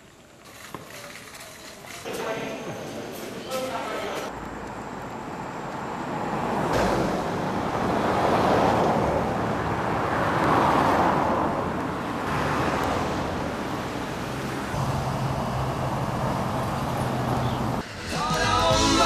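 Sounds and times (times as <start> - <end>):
cars passing: 2.1 - 19.0.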